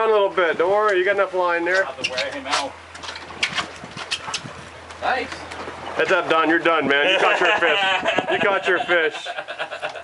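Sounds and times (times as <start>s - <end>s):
boat engine idling: 0.0s - 10.0s.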